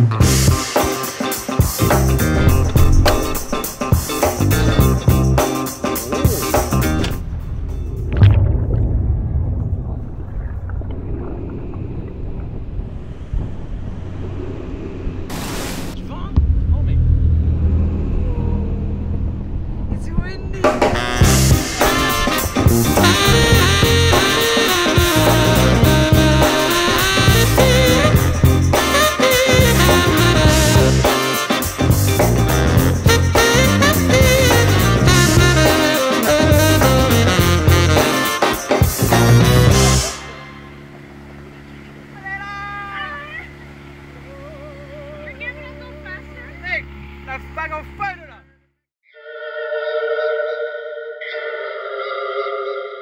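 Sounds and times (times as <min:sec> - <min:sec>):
boat engine humming: 0:00.0 - 0:48.8
deep low rumble: 0:01.8 - 0:28.8
wavering voice call: 0:42.1 - 0:46.3, 0:49.1 - 0:53.0.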